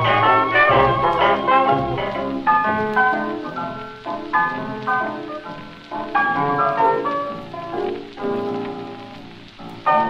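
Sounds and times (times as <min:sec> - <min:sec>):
dance band playing fox-trot: 0:00.0 - 0:02.8
record surface crackle: 0:00.0 - 0:10.0.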